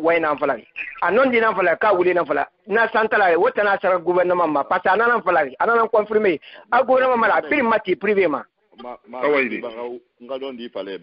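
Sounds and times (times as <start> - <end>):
muffled radio-like voice talking: 0.6 - 1.1.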